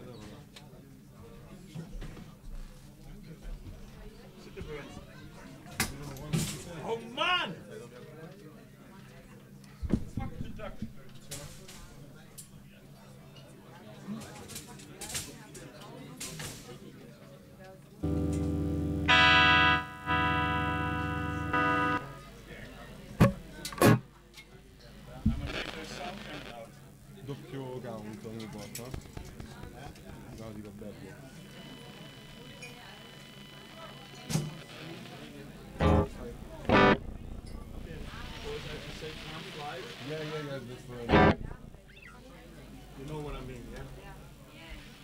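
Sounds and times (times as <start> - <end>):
low background chatter: 0.0 - 45.0
amplified guitar held note: 18.0 - 22.5, 35.7 - 40.0, 41.1 - 41.8.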